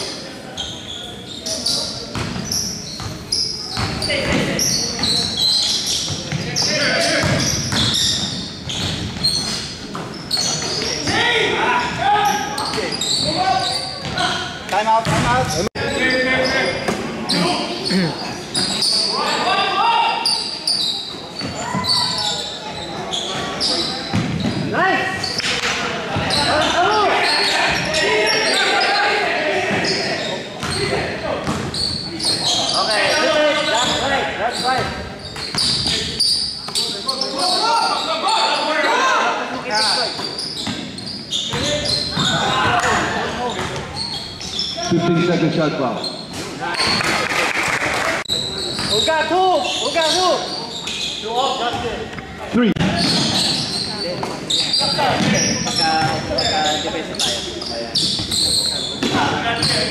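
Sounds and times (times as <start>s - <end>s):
basketball bouncing on court: 2.1s - 5.2s, 6.0s - 11.2s, 15.0s - 15.6s, 23.4s - 24.7s, 30.6s - 31.9s, 55.1s - 56.4s.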